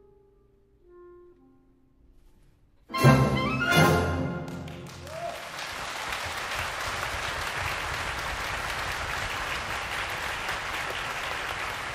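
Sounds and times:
audience applauding: 4.4 - 11.9.

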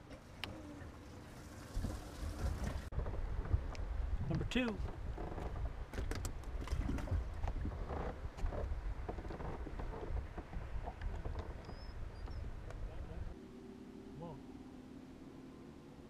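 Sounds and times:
wind rumble on microphone: 1.6 - 13.4.

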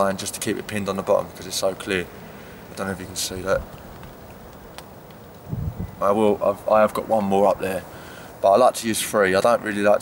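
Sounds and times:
low steady background noise: 0.0 - 10.0
low rumble: 5.5 - 6.0.

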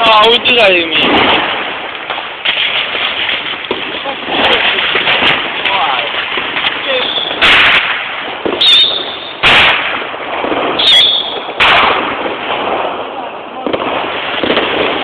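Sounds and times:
crackle of distant explosions: 0.0 - 15.0
high firework whine: 0.0 - 15.0
loud firework bangs: 0.0 - 15.0.

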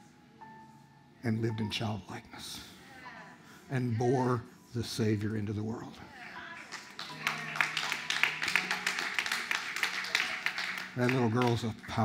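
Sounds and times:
congregation clapping: 6.4 - 12.0.

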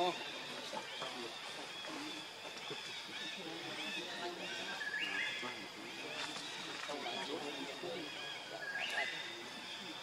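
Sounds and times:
high gliding whistled calls: 0.0 - 10.0
low irregular chatter: 0.0 - 10.0.

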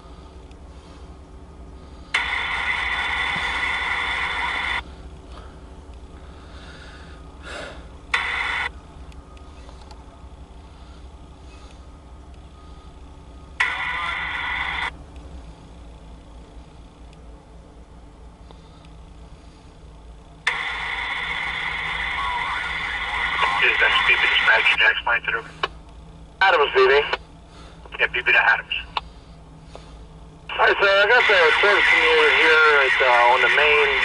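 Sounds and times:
diesel locomotive idling: 0.0 - 34.0
radio static bursts: 2.2 - 4.8, 8.1 - 8.7, 13.6 - 14.9, 20.5 - 25.7, 26.4 - 27.2, 27.9 - 29.0, 30.5 - 34.0.

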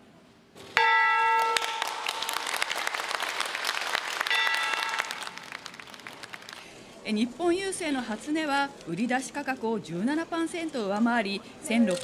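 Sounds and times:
applause: 1.4 - 6.9.

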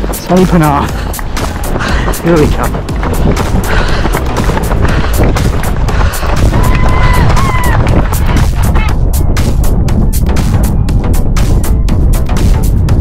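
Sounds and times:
heavy low rumble: 0.0 - 13.0
loud music with steady beat: 5.3 - 13.0.

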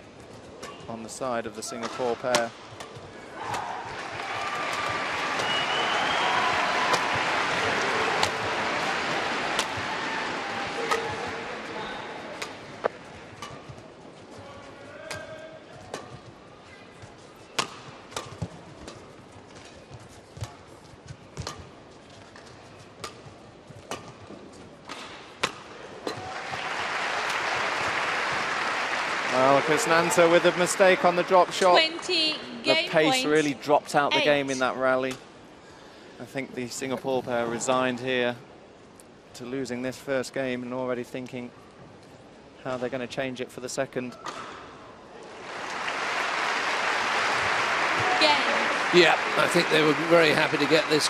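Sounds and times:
crowd cheering: 3.4 - 12.3, 26.2 - 33.5, 45.2 - 51.0
crowd applause: 4.0 - 10.9, 26.2 - 33.3, 45.3 - 51.0
racket hitting shuttlecock: 8.2 - 8.5, 9.5 - 9.8, 10.8 - 11.3, 17.6 - 19.0, 24.9 - 26.3.

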